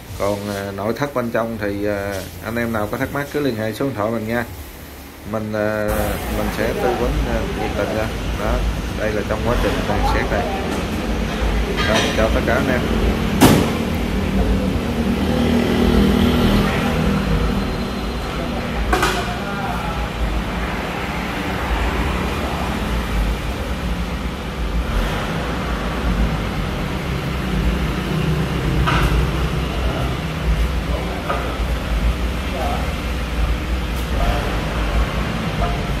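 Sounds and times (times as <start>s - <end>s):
sharp metallic knocks: 13.3s - 13.9s.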